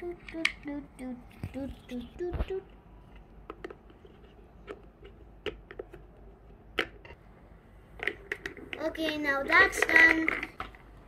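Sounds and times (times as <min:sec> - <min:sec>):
plastic toy parts clicking: 0:08.0 - 0:10.8.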